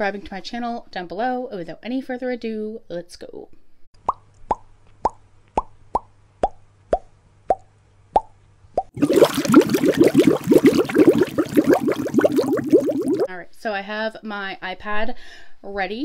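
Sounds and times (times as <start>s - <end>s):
cartoon bubble plops: 8.2s - 13.3s.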